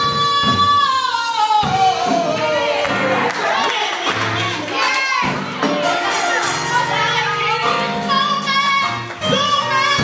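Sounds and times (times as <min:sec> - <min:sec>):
instrumental accompaniment: 0:00.0 - 0:10.0
women's choir singing gospel: 0:00.0 - 0:10.0.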